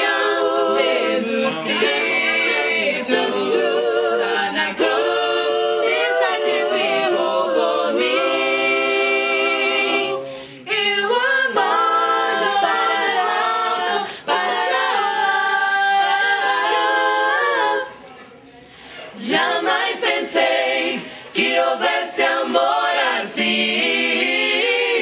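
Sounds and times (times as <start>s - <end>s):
group singing a cappella: 0.0s - 18.2s, 18.8s - 25.0s.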